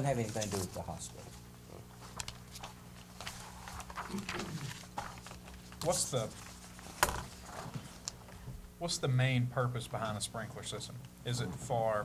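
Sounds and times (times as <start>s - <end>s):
papers rustling: 0.0s - 1.3s, 2.0s - 8.4s
steady low hum: 0.0s - 12.0s.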